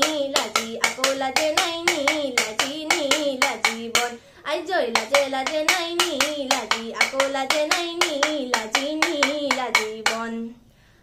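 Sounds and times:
bamboo clapper clacks: 0.0s - 4.2s, 4.9s - 10.3s
girl singing: 0.0s - 10.6s.

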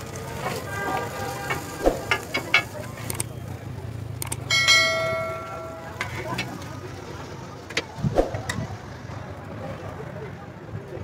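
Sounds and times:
metal spatula clanking on cookware: 4.5s - 6.6s.

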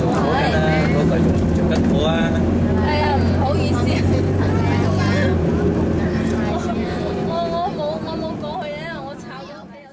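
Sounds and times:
bus engine drone: 0.0s - 9.9s
people talking: 0.0s - 9.9s.

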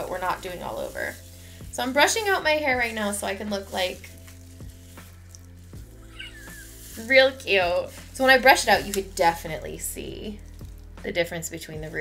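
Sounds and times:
hairbrush strokes through hair: 0.0s - 12.0s.

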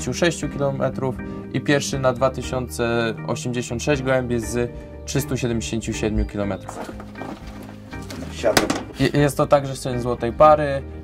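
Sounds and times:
wooden door knock: 8.6s - 9.0s.

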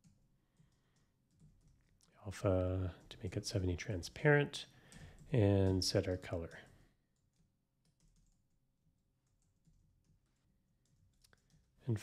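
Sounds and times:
faint keyboard typing: 0.0s - 12.0s.

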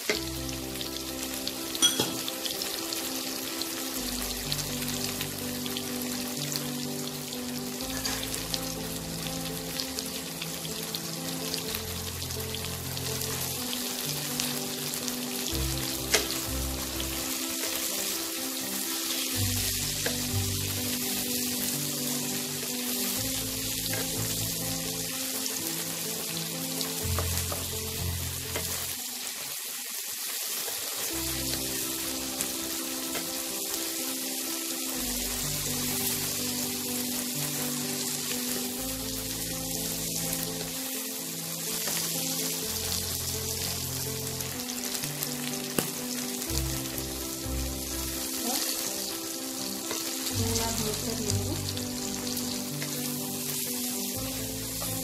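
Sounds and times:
vegetables sizzling in oil: 0.0s - 55.0s.

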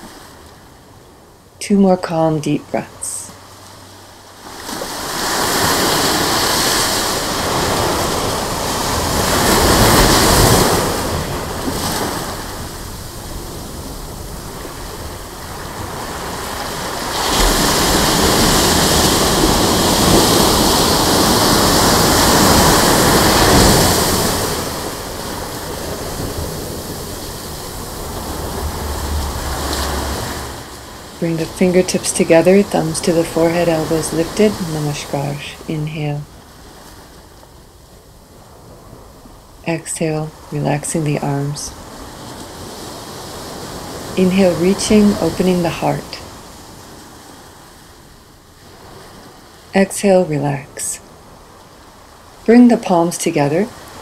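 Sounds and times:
ocean surf breaking on beach: 0.0s - 54.0s.

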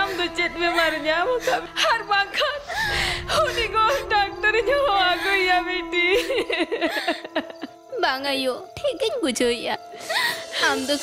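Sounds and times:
woman crying and wailing: 0.0s - 8.0s.

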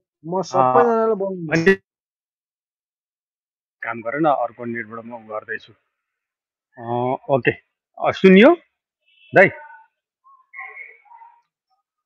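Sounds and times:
faint whistle-like tones: 9.0s - 11.9s.

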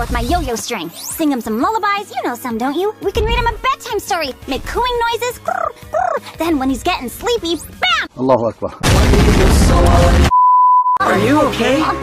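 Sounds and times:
loud explosion: 8.8s - 10.3s
high beep tone: 10.3s - 11.1s.

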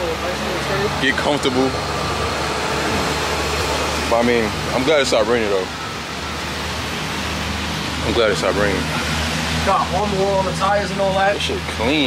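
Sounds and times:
low motor hum: 0.0s - 12.0s
rushing noise: 0.0s - 12.0s.

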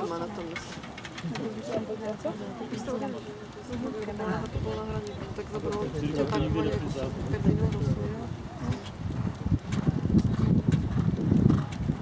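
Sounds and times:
horse hooves cantering on sand: 0.0s - 12.0s.

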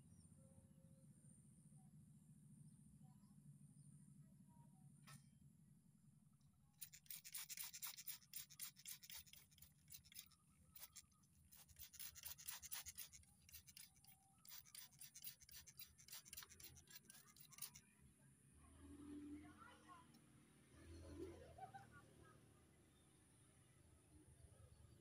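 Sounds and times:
spray bottle squirts: 6.8s - 17.8s.

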